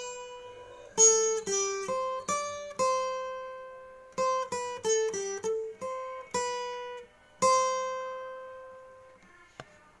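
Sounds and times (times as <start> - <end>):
acoustic guitar strummed chords: 0.0 - 9.3.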